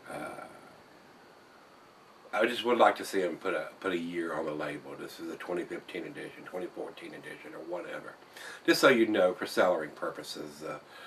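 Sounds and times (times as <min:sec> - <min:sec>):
man saying uh: 0:00.1 - 0:00.6.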